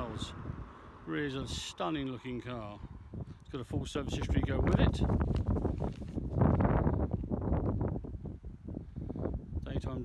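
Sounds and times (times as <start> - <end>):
wind on microphone: 0.0 - 1.7, 2.5 - 10.0.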